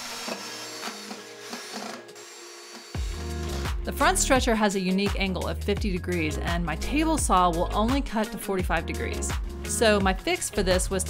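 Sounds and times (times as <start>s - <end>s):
cordless drill driving screws: 0.0s - 3.8s
background music: 0.0s - 11.0s
bass beat: 3.0s - 11.0s.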